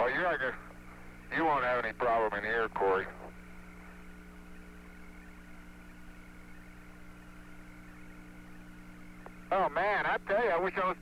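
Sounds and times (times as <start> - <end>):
electrical hum: 0.0 - 11.0
low hiss: 0.0 - 11.0.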